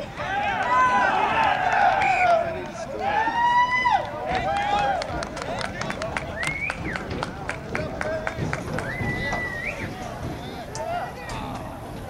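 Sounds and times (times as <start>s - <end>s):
distant people shouting: 0.0s - 7.2s, 8.4s - 11.8s.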